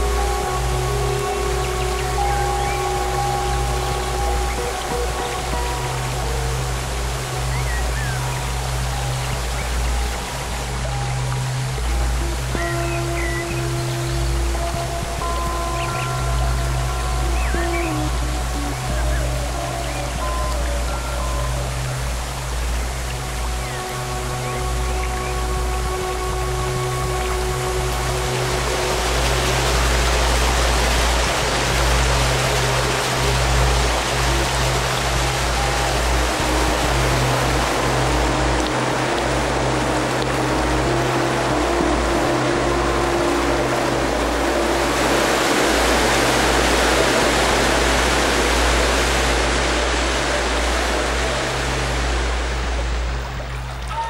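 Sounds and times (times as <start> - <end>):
background music with low drones: 0.0 - 54.0
water rushing over rapids: 0.0 - 54.0.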